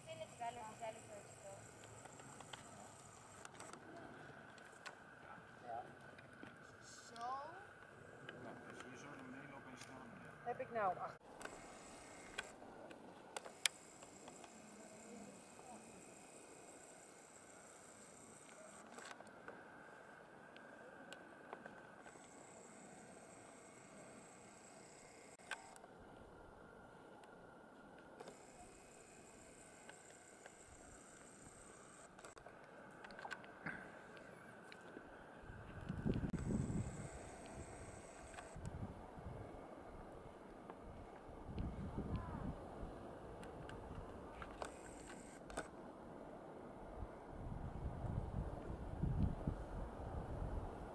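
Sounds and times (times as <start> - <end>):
wind buffeting microphone: 35.5 - 37.8, 38.6 - 39.6, 40.9 - 43.0, 47.4 - 50.9.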